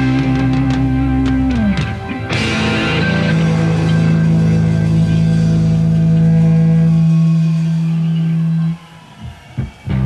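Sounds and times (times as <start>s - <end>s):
rock band holding chord: 0.0s - 8.8s.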